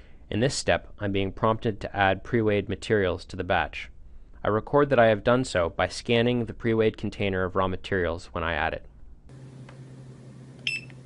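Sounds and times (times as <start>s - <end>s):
barcode scanner beep: 10.6s - 11.0s.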